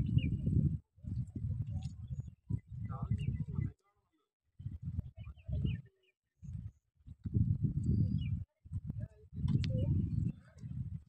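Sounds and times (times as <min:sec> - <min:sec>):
wind buffeting microphone: 0:00.0 - 0:03.8, 0:04.6 - 0:11.0.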